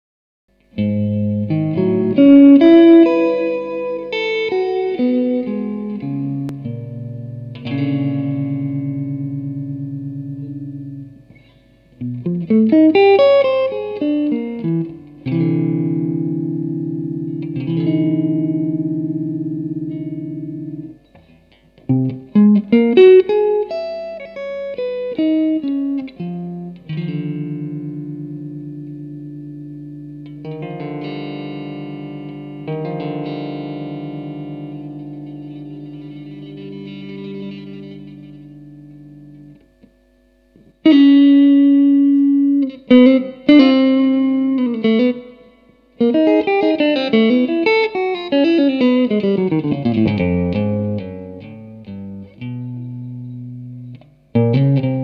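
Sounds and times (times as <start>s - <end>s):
electric guitar improvising: 0.5s - 55.0s.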